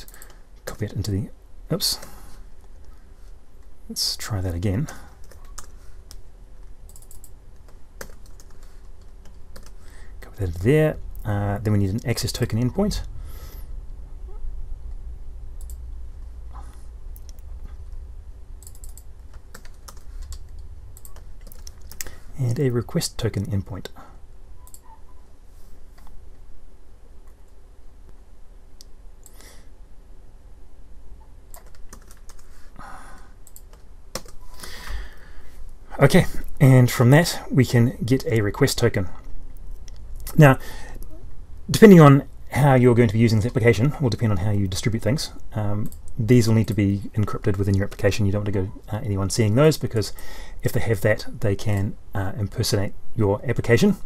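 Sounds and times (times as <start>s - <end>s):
computer keyboard keys clicking: 6.9s - 9.8s, 18.6s - 22.1s, 31.5s - 32.5s, 33.5s - 34.4s.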